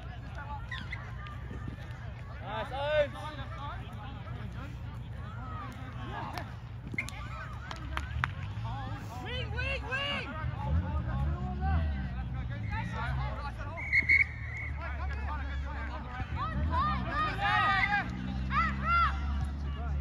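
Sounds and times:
people shouting and calling: 0.0 - 20.0
referee's whistle blast: 13.8 - 14.8.

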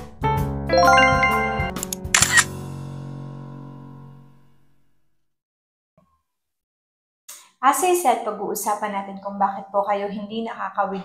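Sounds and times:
chime jingle: 0.7 - 1.8
camera shutter clicks: 1.8 - 2.5.

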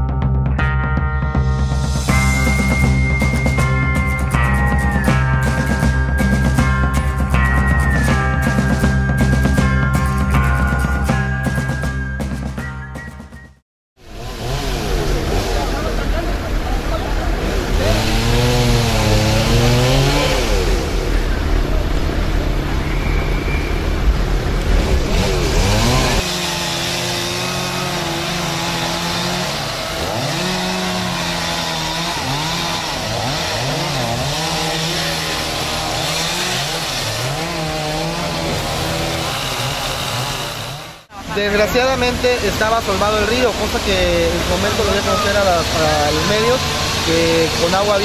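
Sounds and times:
chainsaws revving: 14.0 - 21.2, 24.6 - 48.0
heavy low rumble: 20.5 - 26.1.

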